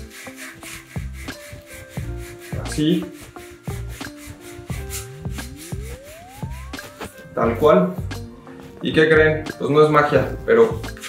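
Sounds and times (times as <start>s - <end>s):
scouring pad scrubbing metal: 0.0s - 7.0s
background music: 0.0s - 11.0s
upward gliding tone: 4.4s - 7.9s.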